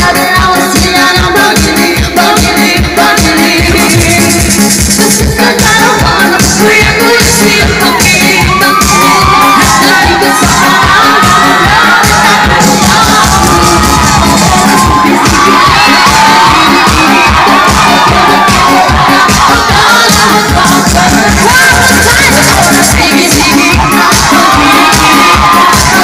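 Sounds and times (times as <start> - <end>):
electronic keyboard dance music: 0.0 - 26.0
children cheering and shouting: 5.4 - 26.0.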